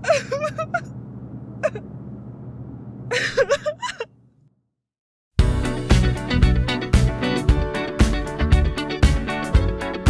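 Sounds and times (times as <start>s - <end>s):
woman sobbing: 0.0s - 0.9s, 1.6s - 1.8s, 3.1s - 4.1s
steady low hum: 0.0s - 4.5s.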